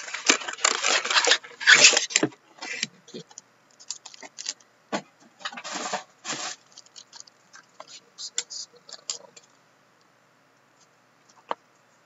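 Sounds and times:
foil packs crinkling and clicking: 0.0s - 4.7s, 5.4s - 9.5s.

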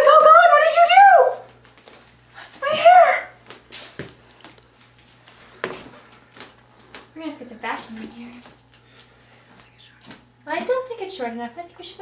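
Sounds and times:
high-pitched vocal cry: 2.6s - 3.4s
faint low hum: 4.2s - 12.0s.

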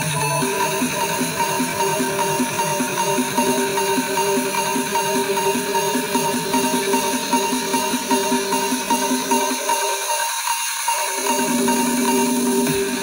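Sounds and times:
electronic music with beat: 0.0s - 13.0s.

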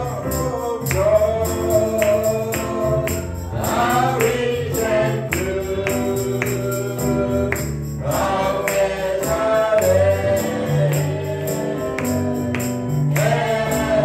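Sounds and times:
tambourine beat: 0.0s - 14.0s
voices singing: 0.0s - 14.0s.

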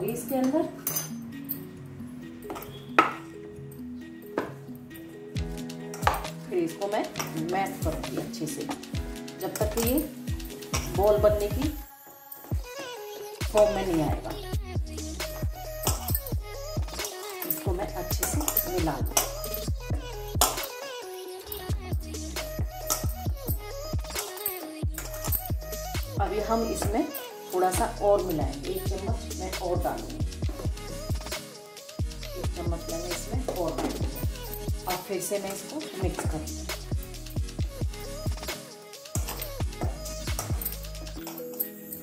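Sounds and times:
background music with held notes: 0.0s - 42.0s.

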